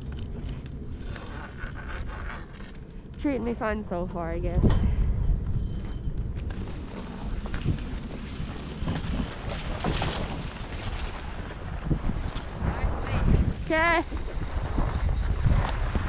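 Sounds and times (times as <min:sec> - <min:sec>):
wind rumbling on microphone: 0:00.0 - 0:16.0
skis sliding on snow: 0:06.6 - 0:13.2.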